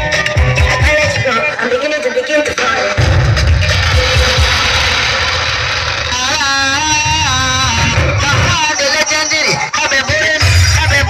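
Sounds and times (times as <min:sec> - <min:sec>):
heavy drumming: 0:02.5 - 0:09.0
dense high wash of sound: 0:03.0 - 0:08.8.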